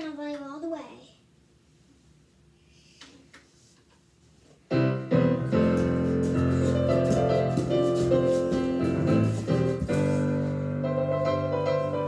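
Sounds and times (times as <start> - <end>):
piano music: 4.7 - 12.0.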